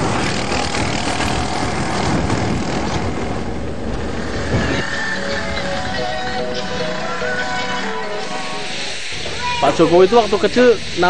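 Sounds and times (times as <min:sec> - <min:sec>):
loud outdoor noise: 0:00.0 - 0:11.0.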